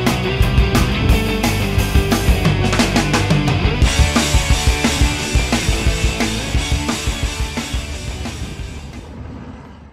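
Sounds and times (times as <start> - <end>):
fast drum beat: 0.0 - 8.8
rock music: 0.0 - 9.0.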